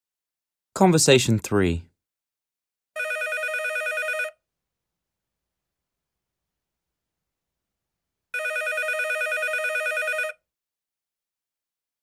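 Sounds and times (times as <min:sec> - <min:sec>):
telephone ringing: 0:03.0 - 0:04.4, 0:08.4 - 0:10.5.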